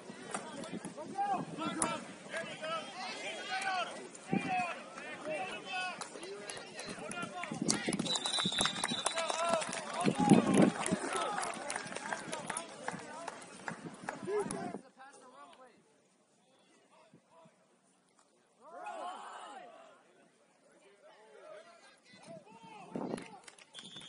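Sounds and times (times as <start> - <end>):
crowd shouting and cheering: 0.0 - 14.8
referee whistle: 8.0 - 9.3, 23.8 - 24.0.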